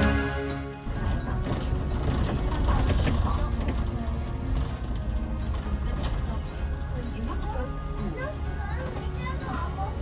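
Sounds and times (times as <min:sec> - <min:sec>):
bus engine rumble: 0:00.8 - 0:10.0.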